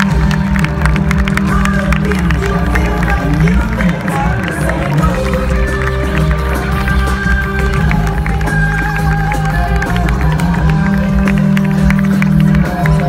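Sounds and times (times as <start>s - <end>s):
loud live concert music: 0.0s - 13.0s.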